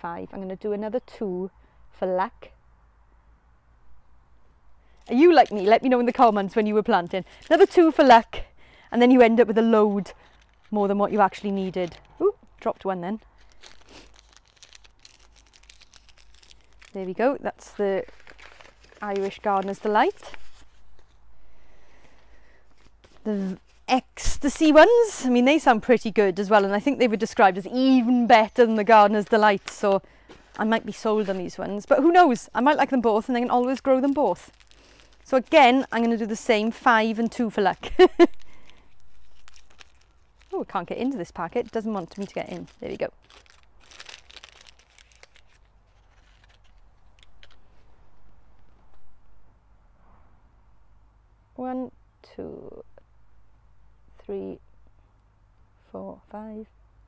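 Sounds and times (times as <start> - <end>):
paper seed packets rustling: 4.9 - 49.1.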